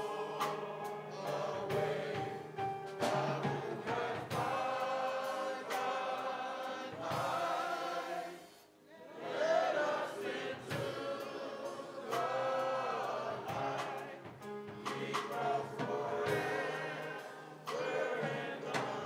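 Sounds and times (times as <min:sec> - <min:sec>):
men's chorus singing: 0:00.0 - 0:19.0.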